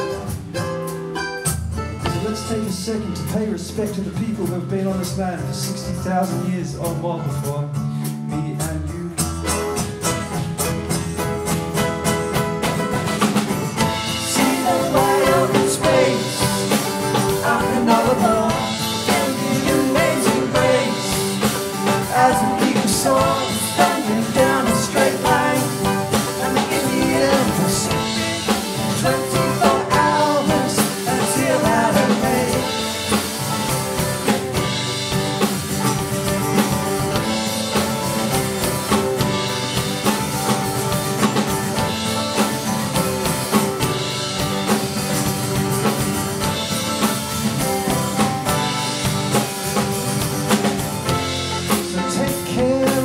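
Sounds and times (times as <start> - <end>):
acoustic guitar: 0.0 - 53.0
drum kit beat: 0.0 - 53.0.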